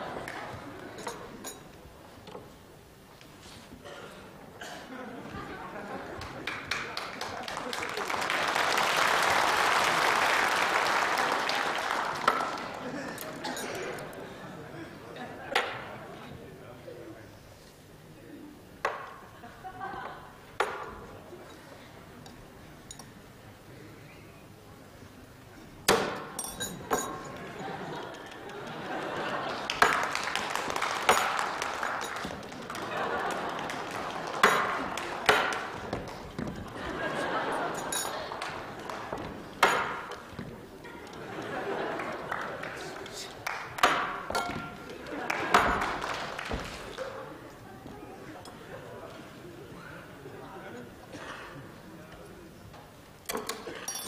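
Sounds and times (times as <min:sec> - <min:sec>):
studio audience applauding: 0:06.2 - 0:13.0, 0:28.0 - 0:36.4, 0:38.2 - 0:39.5, 0:41.4 - 0:43.9, 0:45.0 - 0:47.1.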